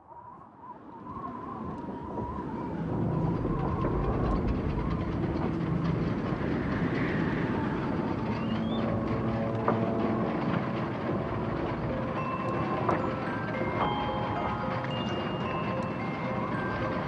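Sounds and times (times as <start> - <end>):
rising metallic squeal: 1.4 - 17.0
heavy machinery rumbling: 2.1 - 17.0.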